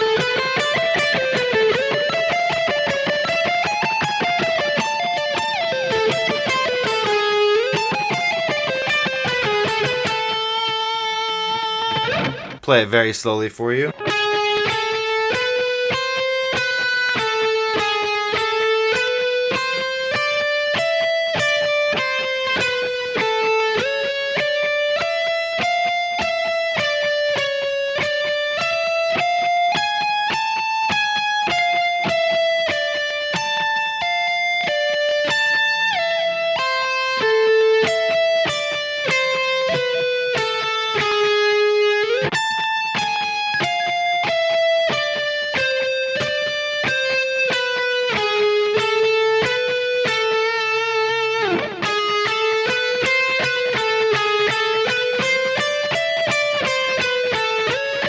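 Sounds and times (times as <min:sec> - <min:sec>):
electric guitar lead lick: 0:00.0 - 0:58.0.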